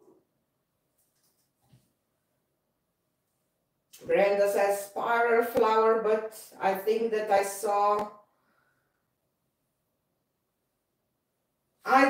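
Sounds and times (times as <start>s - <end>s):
woman speaking: 4.0s - 8.2s.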